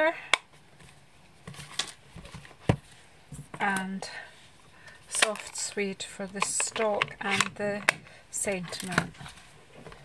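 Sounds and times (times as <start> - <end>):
rustling: 6.4 - 10.0.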